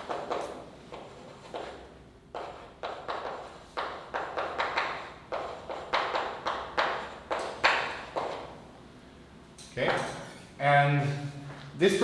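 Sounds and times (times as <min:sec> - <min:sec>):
chalk tapping and scraping on blackboard: 0:00.0 - 0:08.6.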